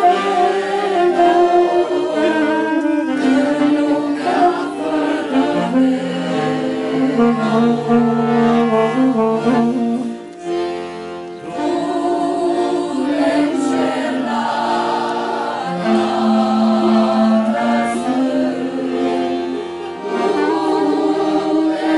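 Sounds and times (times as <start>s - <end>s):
group of people singing: 0.0s - 10.1s, 11.4s - 21.9s
accordion: 0.0s - 21.9s.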